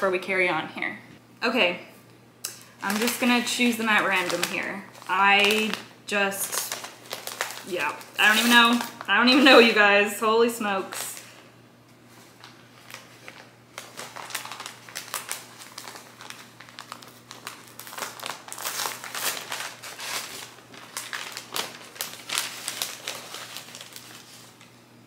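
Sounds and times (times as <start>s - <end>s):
paper and tape crinkling: 2.5s - 9.8s, 12.1s - 24.7s.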